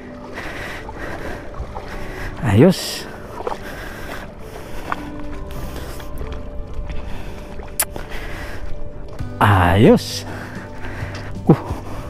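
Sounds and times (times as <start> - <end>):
floodwater sloshing and splashing: 0.0 - 9.4, 10.0 - 12.0.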